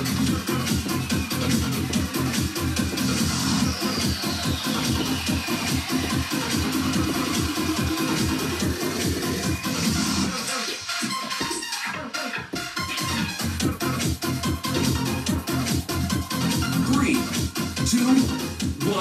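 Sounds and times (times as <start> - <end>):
upbeat electronic dance music: 0.0 - 19.0.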